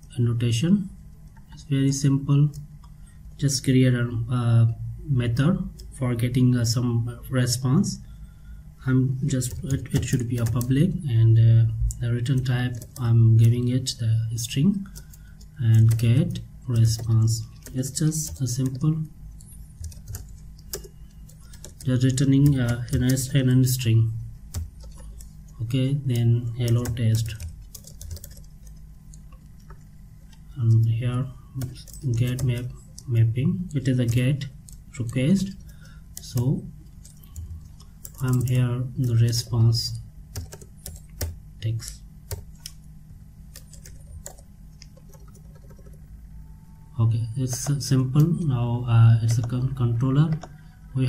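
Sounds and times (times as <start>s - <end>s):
steady low hum: 0.0s - 51.0s
keyboard keystrokes: 26.2s - 29.8s, 43.5s - 46.0s.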